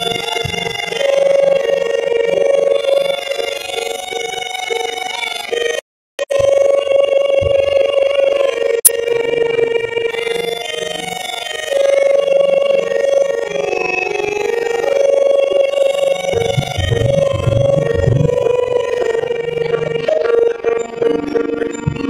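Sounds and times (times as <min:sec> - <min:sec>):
low irregular thuds: 0:00.0 - 0:00.9, 0:16.3 - 0:18.8, 0:21.8 - 0:22.0
harmonium chords: 0:00.0 - 0:22.0.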